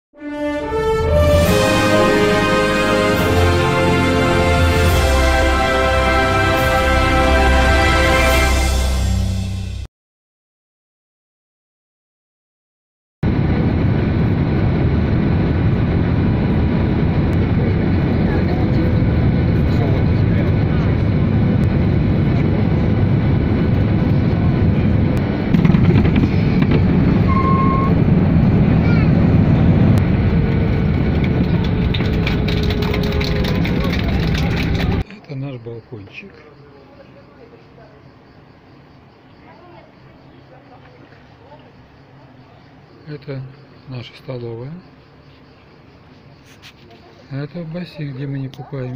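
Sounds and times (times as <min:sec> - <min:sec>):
jet airliner cabin noise: 0:13.3 - 0:35.0.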